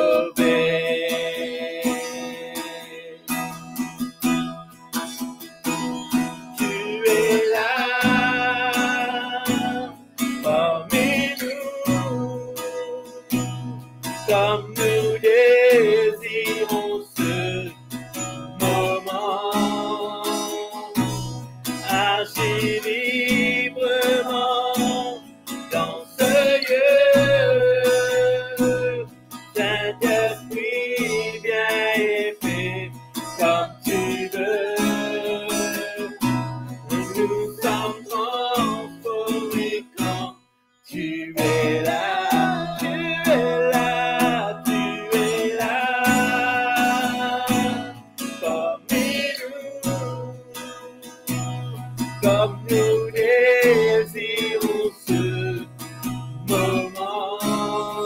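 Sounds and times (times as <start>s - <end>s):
man and woman singing: 0.0s - 3.3s, 6.6s - 13.2s, 14.3s - 17.8s, 18.6s - 21.1s, 21.8s - 40.3s, 40.9s - 51.2s, 52.2s - 55.7s, 56.5s - 58.0s
acoustic guitar strumming: 0.0s - 58.0s.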